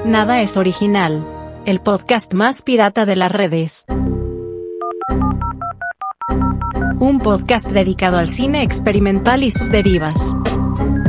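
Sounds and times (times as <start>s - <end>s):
touch-tone keypad beeps: 4.7s - 7.0s.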